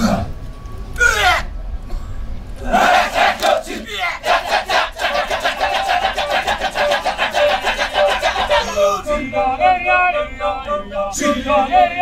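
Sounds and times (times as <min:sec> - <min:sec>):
men chanting rapid rhythm: 0:02.7 - 0:12.0
sustained sung tone: 0:05.4 - 0:12.0.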